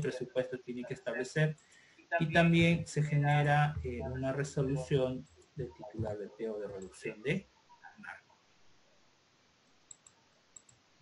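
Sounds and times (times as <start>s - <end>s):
computer mouse clicks: 9.9s - 10.8s.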